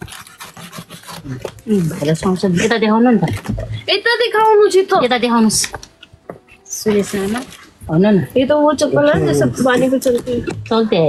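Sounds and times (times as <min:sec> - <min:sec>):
person speaking: 0:06.6 - 0:11.0.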